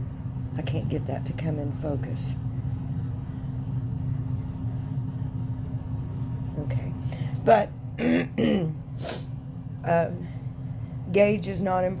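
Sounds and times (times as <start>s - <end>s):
faint hum: 0.0s - 12.0s
low background rumble: 0.0s - 12.0s.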